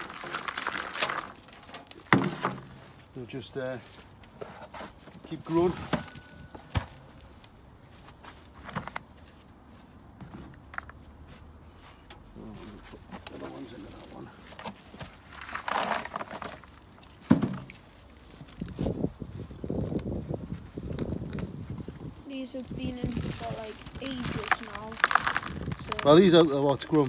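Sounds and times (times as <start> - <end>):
soil rustling and crackling: 0.0 - 10.0, 11.7 - 27.0.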